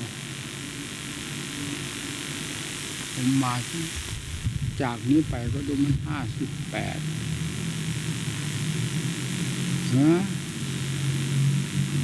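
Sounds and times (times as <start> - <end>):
low hum and hiss: 0.0 - 12.0
elderly man speaking: 4.8 - 7.0.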